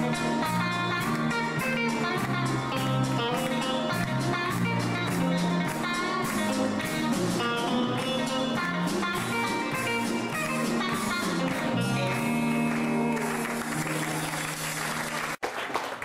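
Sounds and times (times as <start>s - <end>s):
plucked guitar melody: 0.0s - 14.0s
bass line: 0.0s - 15.4s.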